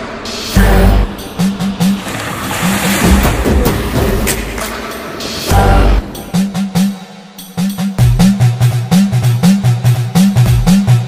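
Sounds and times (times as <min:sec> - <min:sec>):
background music with low notes: 0:00.0 - 0:11.0.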